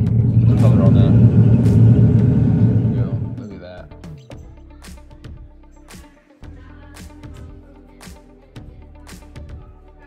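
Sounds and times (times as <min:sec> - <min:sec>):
loud low rumble: 0:00.0 - 0:03.6
soft background music: 0:00.0 - 0:10.0.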